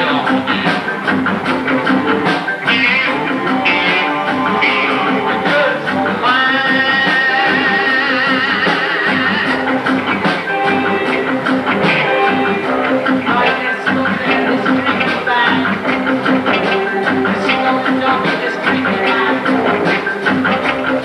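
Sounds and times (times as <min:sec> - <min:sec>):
live rock band: 0:00.0 - 0:21.0
wavering guitar lead line: 0:00.0 - 0:21.0.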